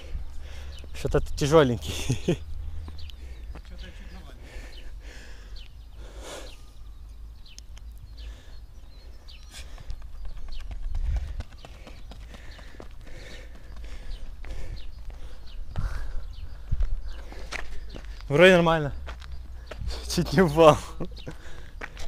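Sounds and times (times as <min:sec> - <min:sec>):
running footsteps on rubber track: 0:02.8 - 0:04.2, 0:08.8 - 0:20.0, 0:21.2 - 0:22.0.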